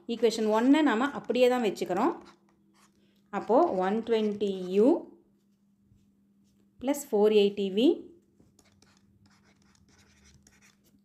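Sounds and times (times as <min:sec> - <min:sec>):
woman speaking: 0:00.0 - 0:02.2, 0:03.4 - 0:05.1, 0:06.8 - 0:08.1.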